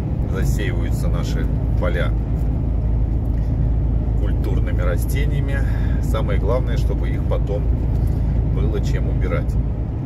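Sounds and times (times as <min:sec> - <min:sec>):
truck engine and tyres droning: 0:00.0 - 0:10.0.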